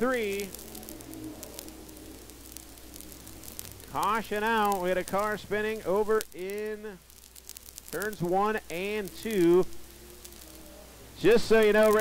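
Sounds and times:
faint race car engines: 0.0s - 4.6s, 9.1s - 11.2s
low hiss with crackle: 0.0s - 12.0s.

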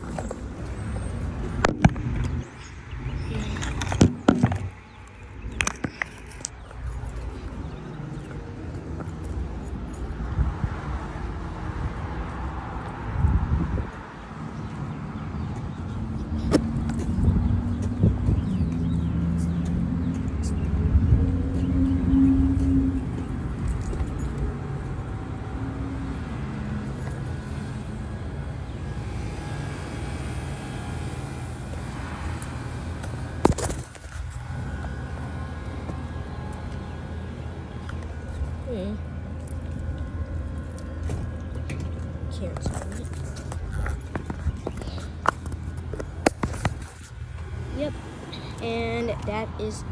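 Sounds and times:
road traffic: 0.0s - 49.9s
vehicle engine running close by: 0.0s - 49.9s.

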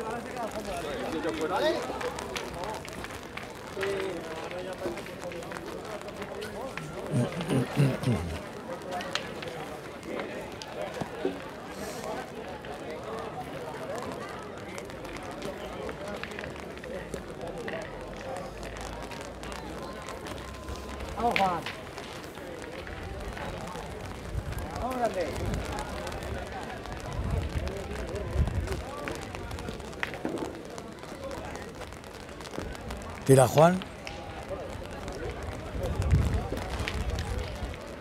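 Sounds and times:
people talking: 3.7s - 11.4s, 33.2s - 38.0s
wind rumbling on microphone: 22.9s - 30.5s, 34.3s - 38.0s.

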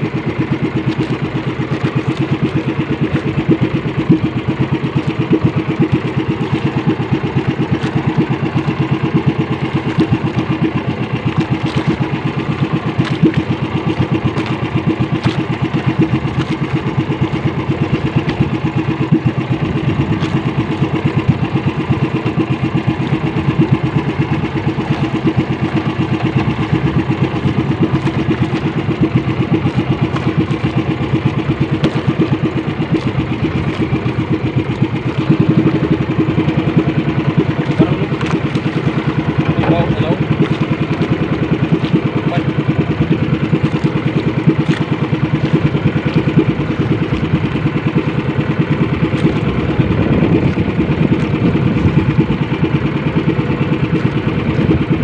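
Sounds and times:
small boat engine running: 0.0s - 55.0s.

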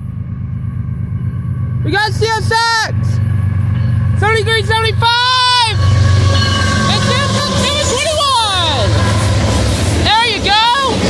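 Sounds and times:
diesel locomotives rumbling past: 0.0s - 11.0s.

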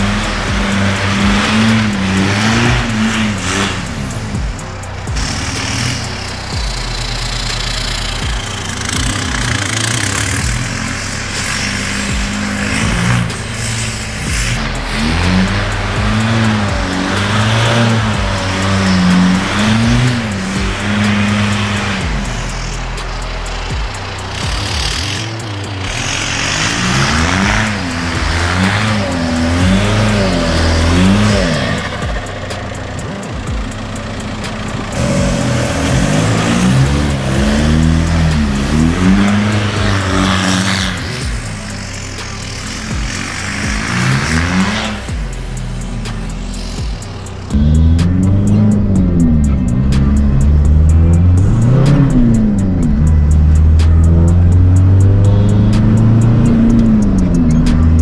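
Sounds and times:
tyres spinning on snow: 0.0s - 46.5s
diesel engine revving: 0.0s - 58.0s.

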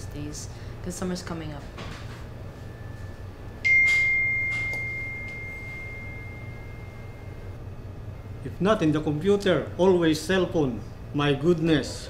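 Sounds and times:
phone notification ding: 3.7s - 7.0s.

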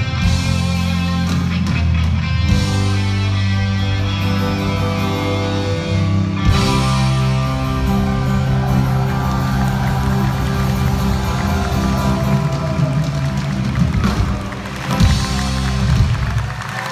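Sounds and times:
drums: 0.0s - 16.9s
electric guitars sustained chords: 0.0s - 16.9s.

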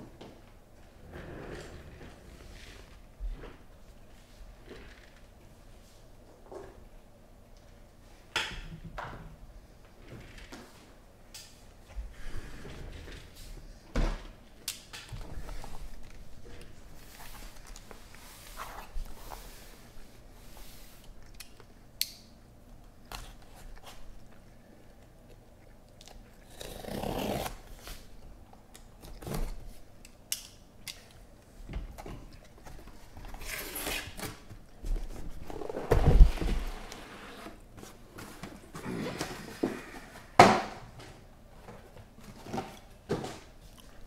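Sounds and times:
cardboard scraping and rustling: 35.0s - 40.0s.

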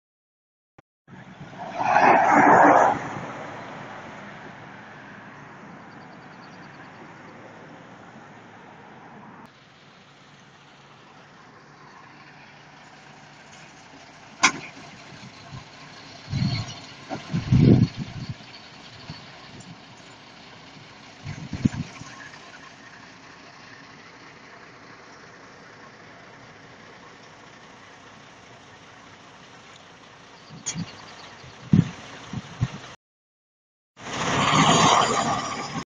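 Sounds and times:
vehicles idling: 5.3s - 33.0s.

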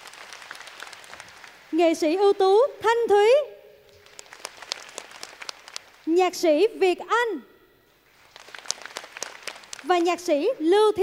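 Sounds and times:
individual hand claps: 0.0s - 1.8s, 3.9s - 6.1s, 8.1s - 10.3s
studio audience applauding: 0.0s - 1.8s, 3.9s - 6.0s, 8.1s - 9.9s.

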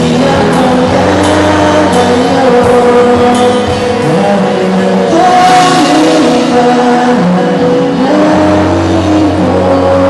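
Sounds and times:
live rock band with electric guitars: 0.0s - 10.0s.

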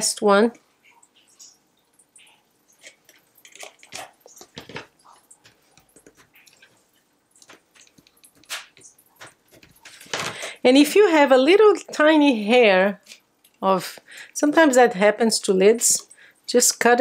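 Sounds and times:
plastic sheet crackling and clicking: 2.8s - 10.5s.

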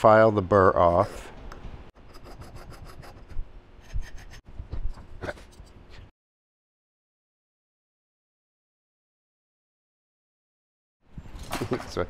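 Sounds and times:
hand file rasping on metal: 2.1s - 4.4s.

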